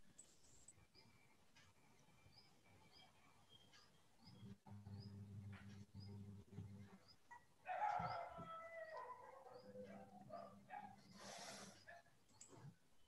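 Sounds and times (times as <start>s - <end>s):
faint drawn-out animal call: 4.3s - 12.1s.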